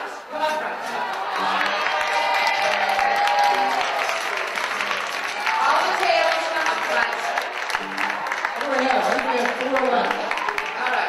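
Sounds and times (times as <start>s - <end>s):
audience applauding: 1.0s - 11.0s
music playing: 7.5s - 9.0s.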